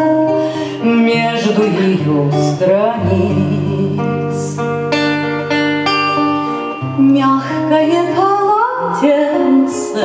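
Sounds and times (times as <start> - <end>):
classical acoustic guitar: 0.0 - 10.0.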